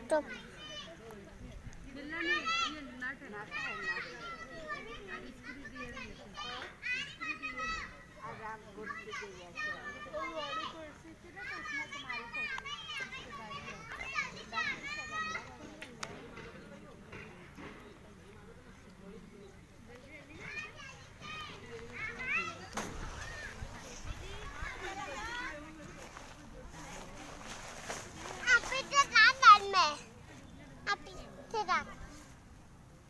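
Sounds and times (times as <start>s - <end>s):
children shouting and calling out: 0.0s - 1.2s, 2.1s - 15.7s, 20.3s - 30.2s.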